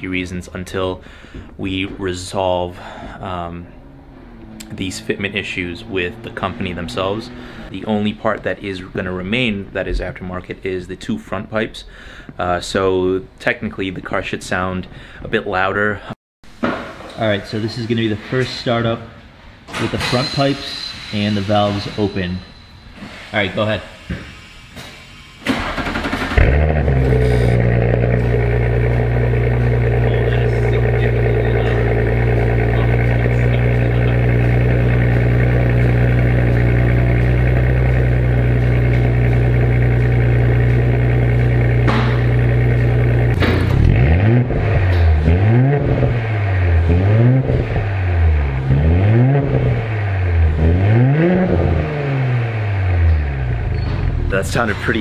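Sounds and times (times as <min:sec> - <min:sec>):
car engine starting and idling: 0:00.0 - 0:10.2, 0:24.8 - 0:55.0
car engine revving: 0:02.7 - 0:08.1, 0:25.4 - 0:55.0.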